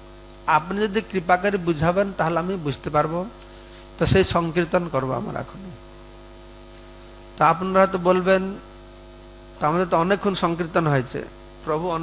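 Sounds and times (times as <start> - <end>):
electrical mains hum: 0.0 - 12.0
man speaking: 0.5 - 3.4, 4.0 - 5.8, 7.4 - 8.7, 9.6 - 12.0.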